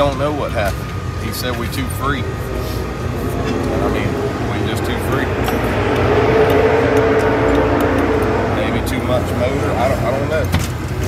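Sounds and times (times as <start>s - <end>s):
race car engine at high revs: 0.0s - 11.0s.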